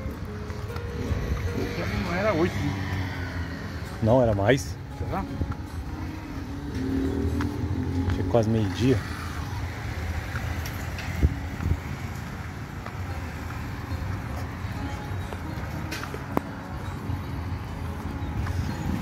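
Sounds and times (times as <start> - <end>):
low rumble of passing vehicles: 0.0 - 19.0.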